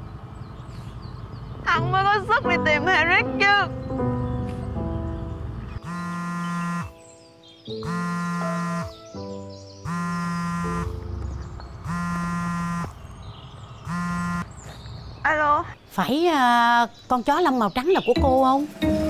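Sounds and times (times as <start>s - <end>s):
mobile phone ringtone: 5.8s - 6.9s, 7.8s - 9.0s, 9.9s - 10.9s, 11.9s - 12.9s.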